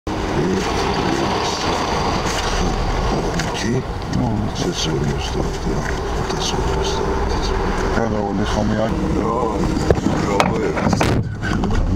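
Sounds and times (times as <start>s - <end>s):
car cabin rumble: 0.3s - 11.9s.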